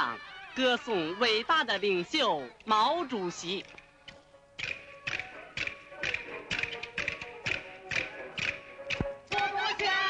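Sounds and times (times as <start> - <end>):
sharp percussion strikes: 4.1 - 9.7
person singing: 5.1 - 10.0.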